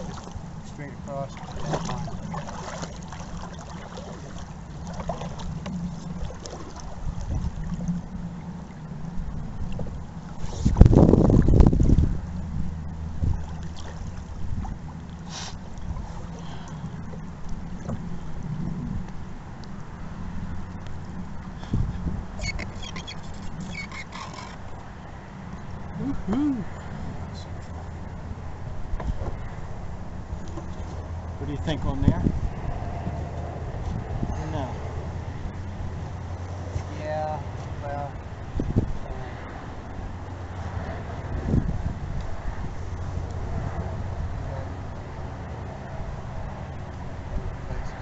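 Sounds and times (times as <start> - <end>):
canoe paddle strokes: 0.0 - 28.0, 30.3 - 31.4
wind rumbling on microphone: 0.0 - 48.0.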